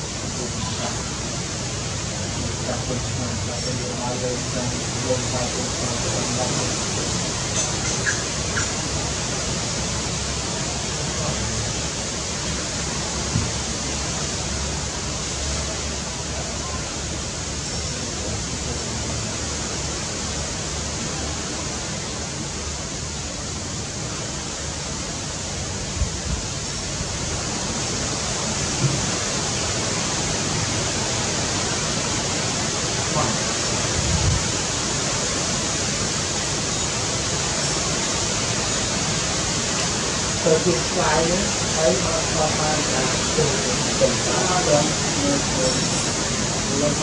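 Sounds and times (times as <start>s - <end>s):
steady outdoor hiss: 0.0s - 47.0s.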